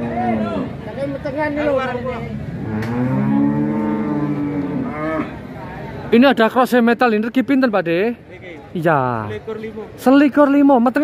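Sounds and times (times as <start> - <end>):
cow mooing: 2.6 - 5.4.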